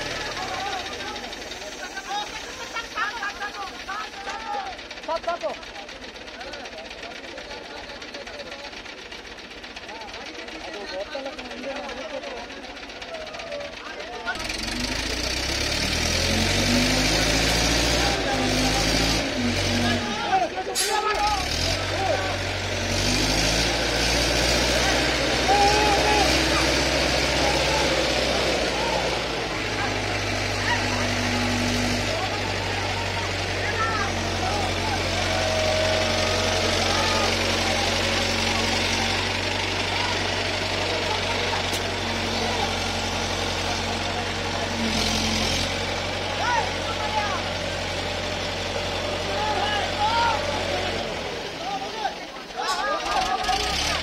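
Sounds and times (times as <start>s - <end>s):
crane engine hoisting: 0.0s - 54.0s.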